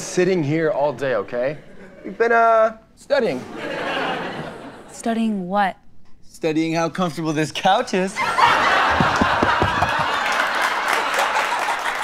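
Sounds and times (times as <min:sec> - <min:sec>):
studio audience laughing: 0:03.4 - 0:05.0, 0:08.2 - 0:12.0.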